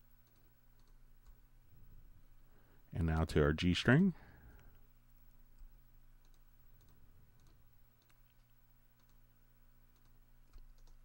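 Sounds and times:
steady low hum: 0.0s - 11.0s
computer mouse clicks: 0.2s - 1.4s, 6.2s - 9.2s, 9.9s - 11.0s.

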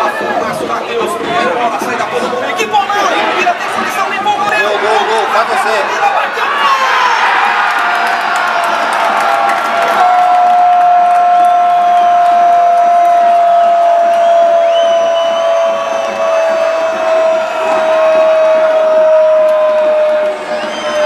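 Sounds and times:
crowd cheering: 0.0s - 21.0s.

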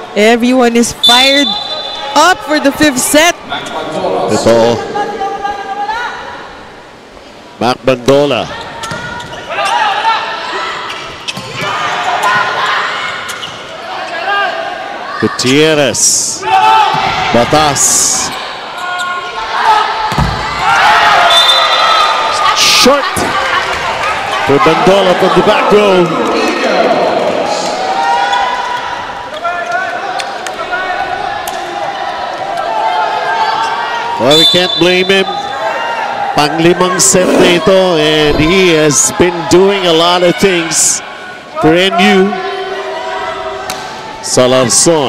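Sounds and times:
crowd noise in a large hall: 0.0s - 45.0s
sneakers squeaking on court: 8.6s - 9.8s, 10.9s - 11.6s
volleyball smacks: 20.1s - 20.4s
crowd murmur: 36.8s - 38.4s.

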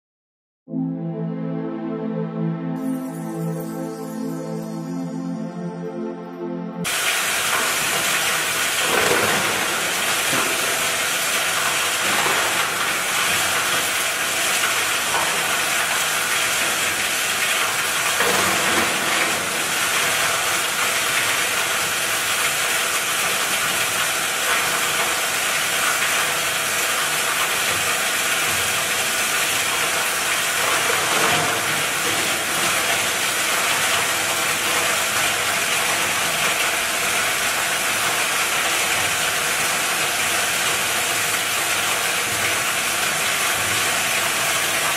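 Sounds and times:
plastic granulator grinding: 6.9s - 21.9s, 23.3s - 40.0s.

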